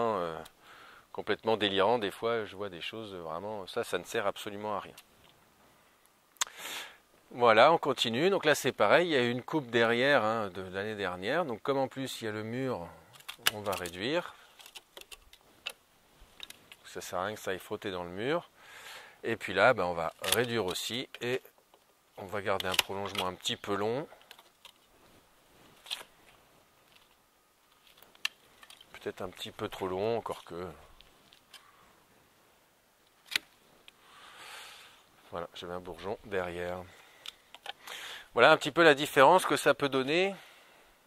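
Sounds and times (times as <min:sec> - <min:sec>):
soft rustle: 0:01.2 - 0:06.2, 0:09.7 - 0:41.0.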